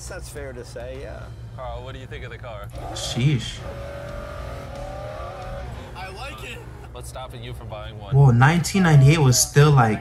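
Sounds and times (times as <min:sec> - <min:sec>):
voices talking: 0:00.0 - 0:10.0
car engine drone from cabin: 0:00.8 - 0:10.0.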